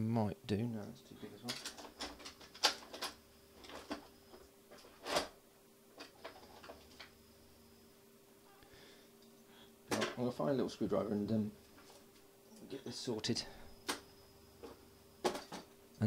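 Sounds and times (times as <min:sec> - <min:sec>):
faint electrical hum: 0:00.0 - 0:16.0.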